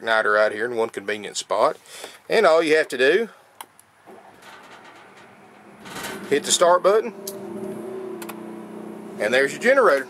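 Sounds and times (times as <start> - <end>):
generator humming: 4.1 - 10.0.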